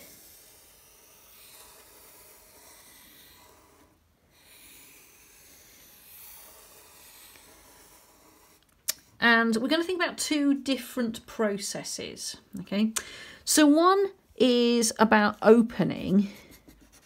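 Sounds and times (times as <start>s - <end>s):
marker pen scratching: 0.0s - 9.8s, 14.5s - 17.0s.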